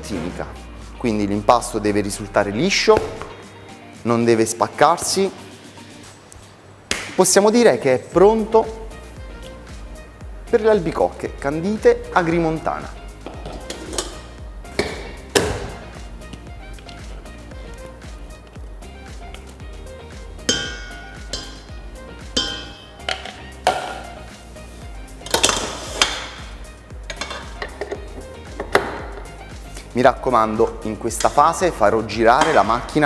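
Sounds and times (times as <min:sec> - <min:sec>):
background music with held tones: 0:00.0 - 0:33.0
bowls clinking: 0:13.2 - 0:17.1, 0:20.4 - 0:24.3, 0:25.2 - 0:29.9.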